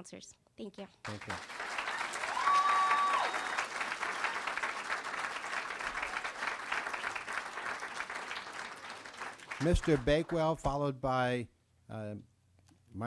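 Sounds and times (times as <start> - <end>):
audience applauding: 1.1 - 10.6.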